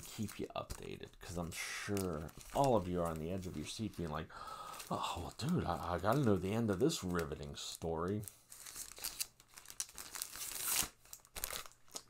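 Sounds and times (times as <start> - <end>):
rustling and crinkling handling noise: 0.0 - 12.0.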